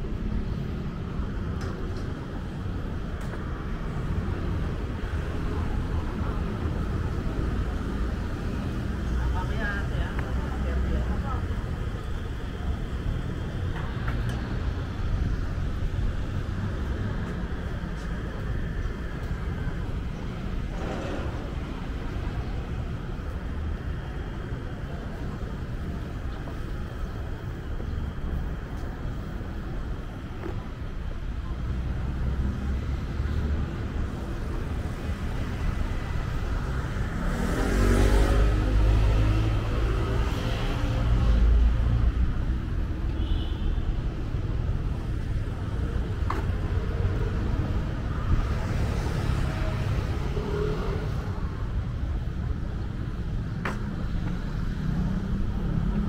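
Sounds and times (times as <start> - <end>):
rumble of passing cars: 0.0 - 56.0
vehicle accelerating: 37.0 - 40.9.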